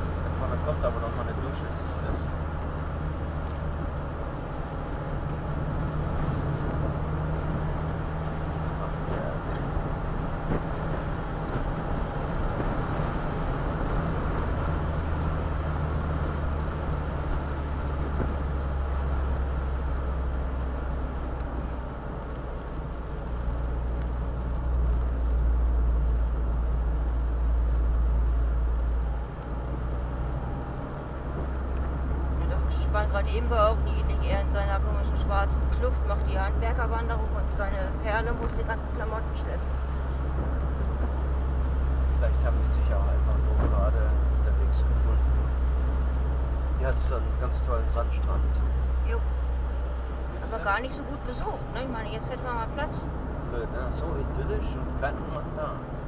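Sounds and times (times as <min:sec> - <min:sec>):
car engine drone: 0:00.0 - 0:56.0.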